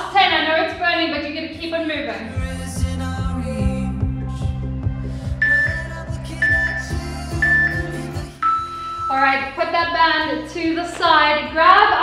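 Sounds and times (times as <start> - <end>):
woman speaking: 0.0 - 2.3, 9.1 - 12.0
workout music with steady beat: 0.0 - 12.0
interval timer beeps: 5.4 - 9.2.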